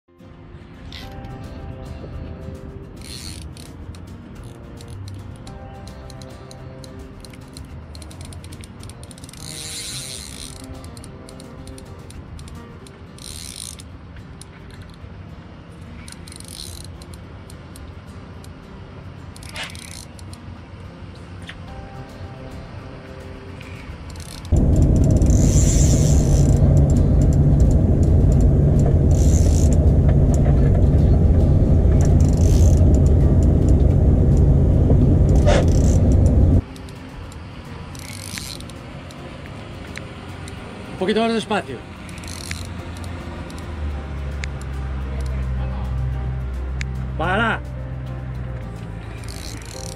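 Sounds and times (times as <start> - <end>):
quiet background music: 0.1 - 49.9
spinning reel ratcheting: 3.0 - 3.8, 7.2 - 11.8, 13.2 - 13.9, 16.0 - 17.2, 19.4 - 20.4, 24.1 - 34.5, 35.3 - 36.9, 37.9 - 38.7, 42.1 - 43.7, 49.2 - 49.9
loud low rumble: 24.5 - 36.6.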